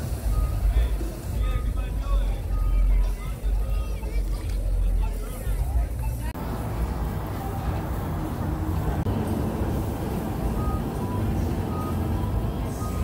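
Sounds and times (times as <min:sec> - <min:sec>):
low street rumble: 0:00.0 - 0:13.0
music: 0:00.0 - 0:13.0
background voices: 0:01.9 - 0:13.0.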